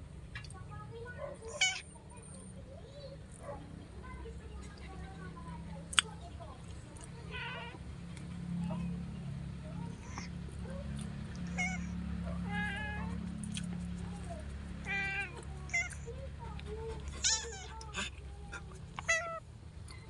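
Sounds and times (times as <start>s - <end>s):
cat meowing: 1.5s - 1.9s, 11.5s - 13.2s, 17.2s - 17.8s, 19.0s - 19.4s.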